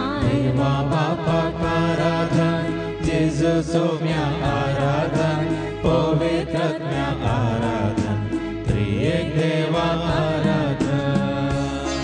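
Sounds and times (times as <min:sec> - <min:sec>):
woman singing a hymn: 0:00.0 - 0:02.9
instrumental accompaniment: 0:00.0 - 0:12.0
steady bass line: 0:04.2 - 0:12.0.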